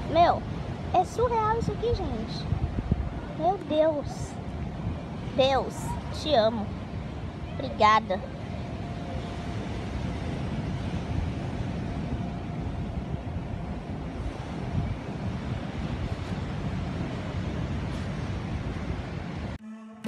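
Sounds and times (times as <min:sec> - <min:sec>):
wind blowing across microphone: 0:00.0 - 0:19.6
ocean surf: 0:00.0 - 0:19.9.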